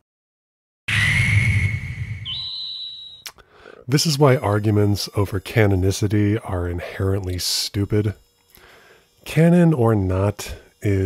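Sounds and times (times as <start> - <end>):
high whistle rising in pitch: 0.9 - 3.3.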